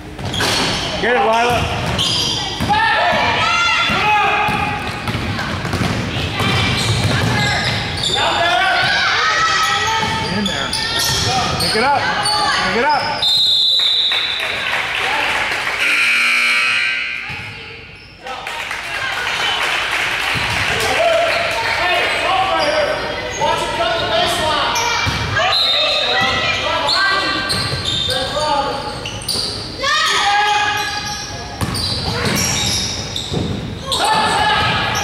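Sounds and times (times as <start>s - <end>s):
voices echoing in a hall: 0.0s - 35.0s
high whistle: 13.2s - 14.6s.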